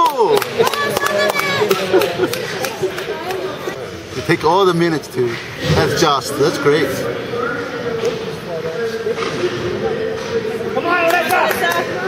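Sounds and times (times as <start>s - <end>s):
spectators calling and chattering: 0.0s - 12.0s.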